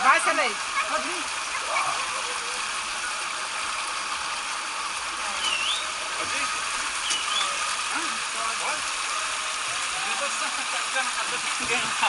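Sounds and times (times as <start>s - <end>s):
water rushing down a slide: 0.0s - 12.0s.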